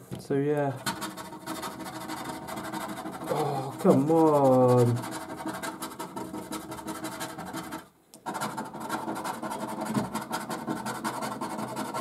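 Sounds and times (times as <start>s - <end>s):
scratching a scratchcard: 0.8s - 12.0s.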